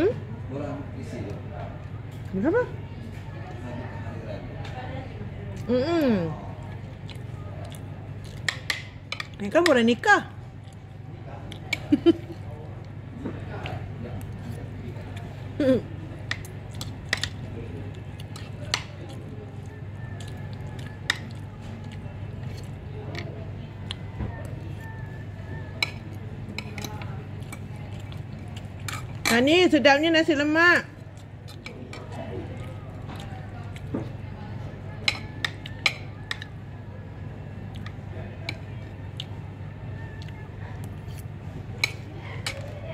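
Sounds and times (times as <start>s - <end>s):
cutlery clinking against a plate: 8.3s - 9.4s, 16.2s - 17.5s, 18.2s - 19.2s, 20.2s - 21.4s, 25.8s - 29.5s, 35.0s - 36.5s, 41.8s - 42.8s
cutlery clicking on ceramic plate: 25.8s - 26.0s, 26.6s - 27.6s, 35.0s - 36.5s, 41.8s - 42.7s.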